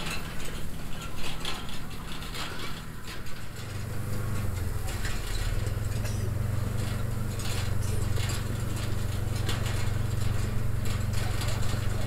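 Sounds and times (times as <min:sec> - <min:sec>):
hay rake mechanism clattering: 0:00.0 - 0:12.0
tractor diesel engine running: 0:00.0 - 0:12.0.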